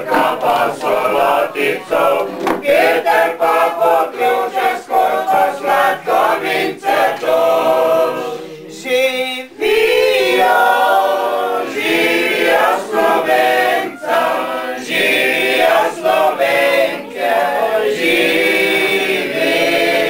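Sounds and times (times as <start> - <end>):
group of people singing: 0.0 - 20.0.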